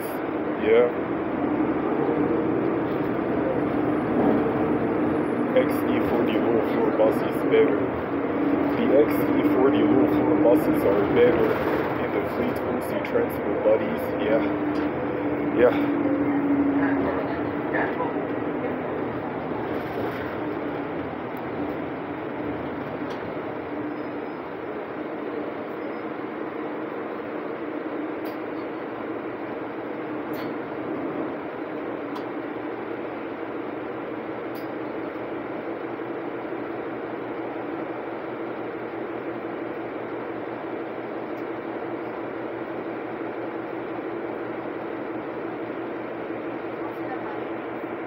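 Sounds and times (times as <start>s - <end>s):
bus engine hum: 0.0s - 48.0s
road noise: 0.0s - 48.0s.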